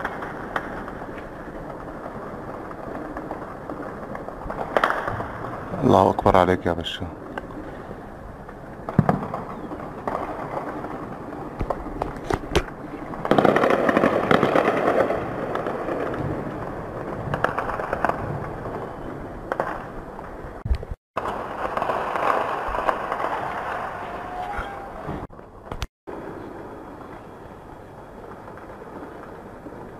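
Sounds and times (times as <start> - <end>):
distant blast rumble: 0.0 - 29.9
distant gunfire cracks: 4.4 - 5.8, 8.8 - 11.0.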